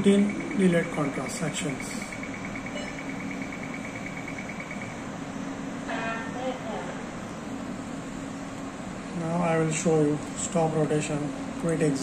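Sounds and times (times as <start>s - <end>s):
scanner low mechanical hum: 0.0s - 12.0s
short high beeps: 2.3s - 4.9s.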